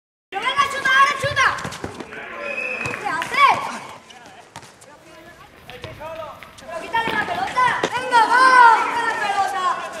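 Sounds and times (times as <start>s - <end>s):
running footsteps: 0.4s - 10.0s
ball kicked and bouncing on concrete: 0.5s - 2.2s, 2.8s - 8.1s.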